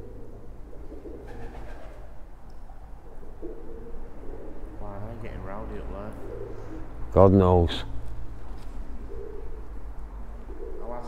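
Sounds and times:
pigeon cooing: 0.0 - 7.6, 8.8 - 11.0.

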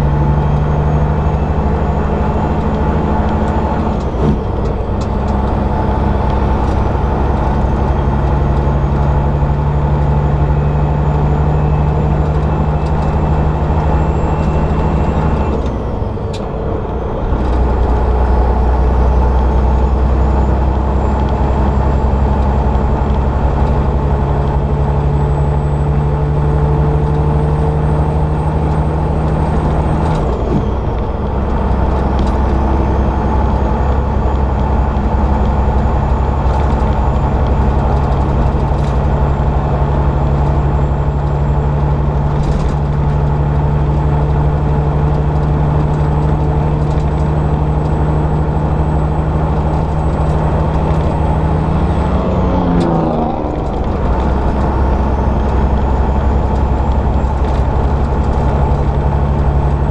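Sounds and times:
truck diesel engine under load: 0.0 - 59.9.

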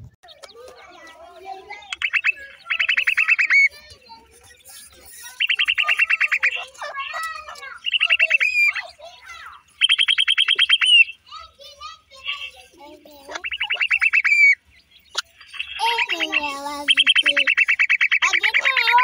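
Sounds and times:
birds trilling chirps: 0.0 - 19.0.

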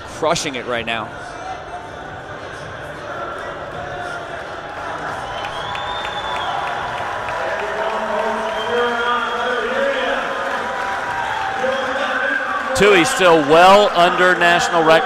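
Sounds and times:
spectators cheering and shouting: 2.6 - 15.0.

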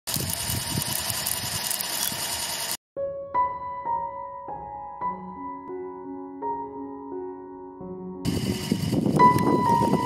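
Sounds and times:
winch motor whirring whine: 0.1 - 2.8, 8.3 - 10.0
wind buffeting microphone: 8.3 - 10.0.

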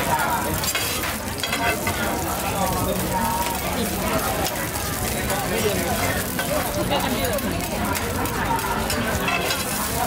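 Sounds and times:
roti sizzling in oil: 0.0 - 10.0
metal spatulas scraping griddle: 0.6 - 2.0, 8.9 - 10.0.

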